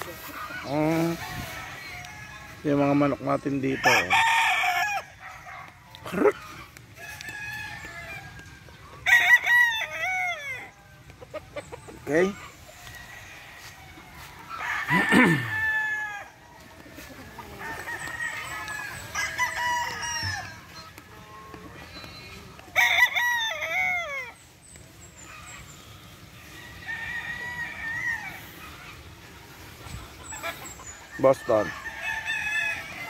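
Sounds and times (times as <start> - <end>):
roosters crowing: 0.0 - 33.0.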